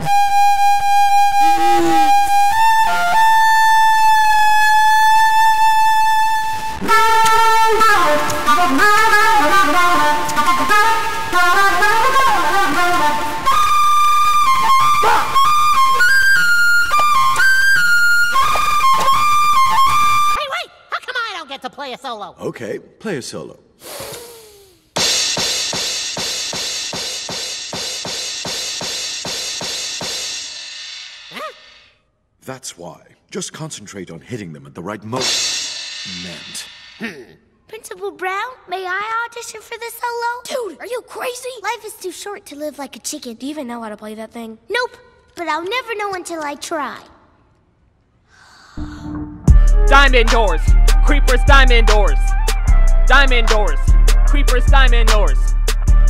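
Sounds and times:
flute holding a high note: 0.0s - 20.4s
person calling out: 1.4s - 2.6s, 31.3s - 31.6s
hand cymbals crashing: 25.0s - 31.3s, 35.2s - 37.0s.

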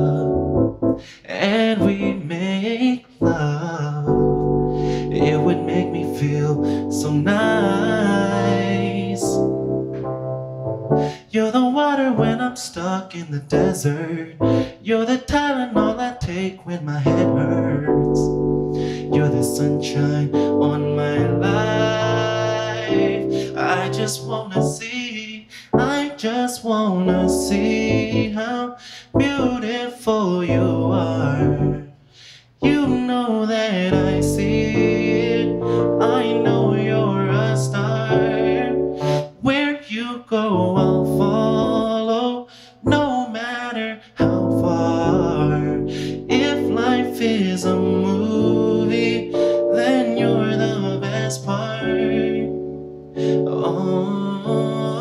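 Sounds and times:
man singing: 0.0s - 0.4s, 1.0s - 9.6s, 11.0s - 55.0s
digital piano chord: 0.0s - 1.1s, 1.8s - 2.4s, 3.2s - 11.3s, 13.6s - 14.9s, 17.0s - 24.8s, 34.0s - 39.4s, 44.2s - 55.0s.

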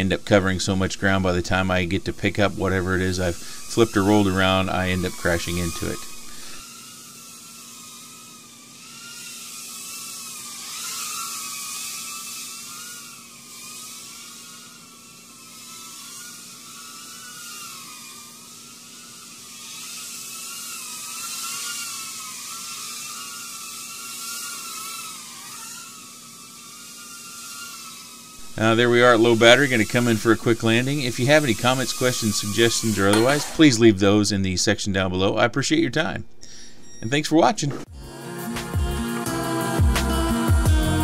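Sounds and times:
steady hiss: 0.0s - 25.4s, 26.0s - 34.4s
drone motors whining: 0.0s - 35.4s, 36.0s - 41.0s.

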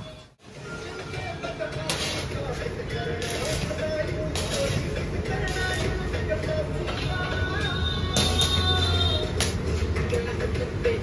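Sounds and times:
background music: 0.0s - 11.0s
low welding machine hum: 1.2s - 10.7s
welding arc crackling and hissing: 1.6s - 6.7s.

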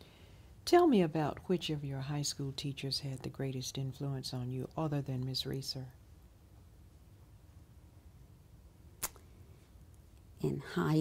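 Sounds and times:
short sharp click: 9.0s - 9.2s.

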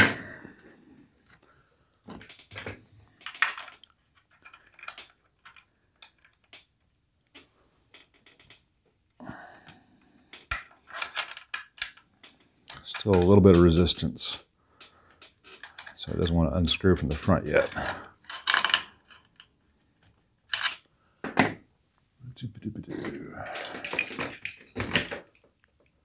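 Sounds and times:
hands clicking and scraping on metal: 2.1s - 8.7s, 10.3s - 14.0s.

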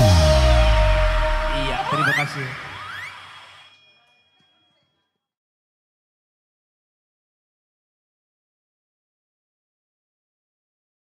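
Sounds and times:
live keyboard music: 0.0s - 2.2s
person singing: 0.0s - 2.3s.

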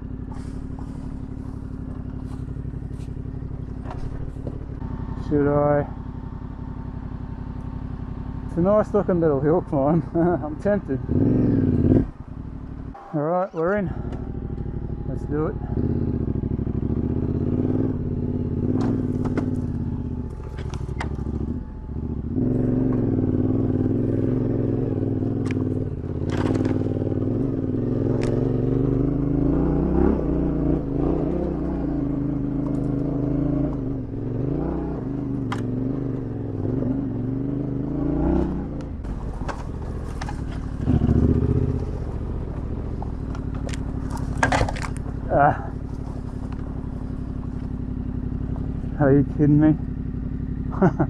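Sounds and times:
motorcycle engine revving under load: 0.0s - 51.0s
stones and brush hitting bike: 26.2s - 27.0s, 39.1s - 47.8s.

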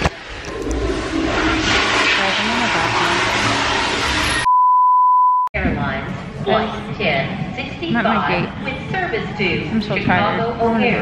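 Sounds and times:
censor bleep: 4.4s - 5.5s.

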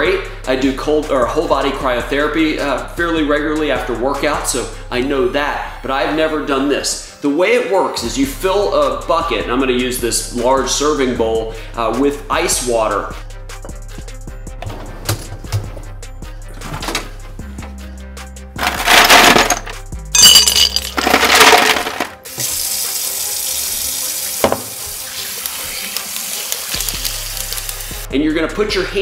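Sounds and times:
soft background music: 0.0s - 29.0s
ice cubes clattering into glass bowl: 18.6s - 22.2s.

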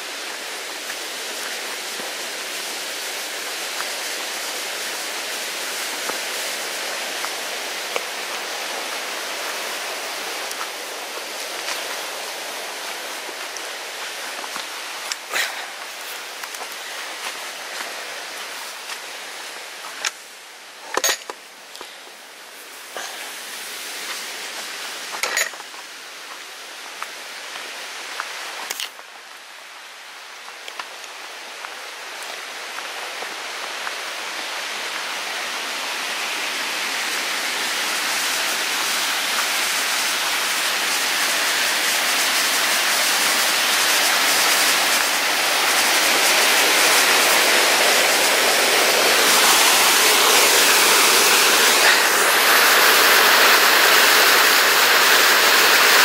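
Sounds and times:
waterfall and stream rushing: 0.0s - 56.0s.

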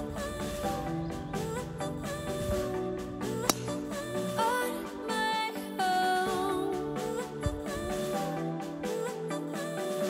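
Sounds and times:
background music sliding melody: 0.0s - 10.0s
golf club striking ball: 3.4s - 4.0s.

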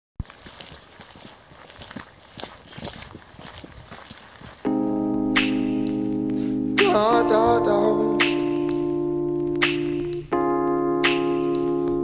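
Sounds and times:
footsteps on dirt path: 0.2s - 6.5s.

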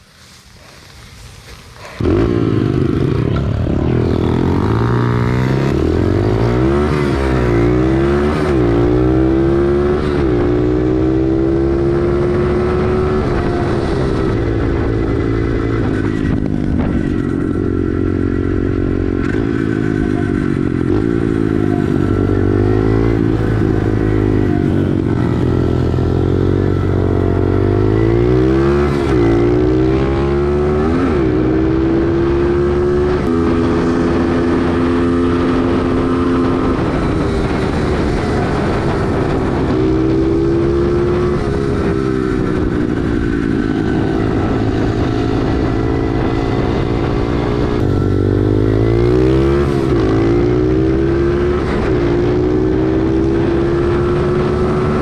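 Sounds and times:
small motorbike engine revving: 1.9s - 55.0s.

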